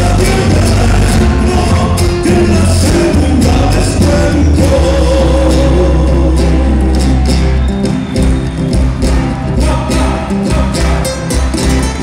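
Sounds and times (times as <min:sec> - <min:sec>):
person singing: 0:00.0 - 0:07.0
folk band with heavy bass: 0:00.0 - 0:12.0.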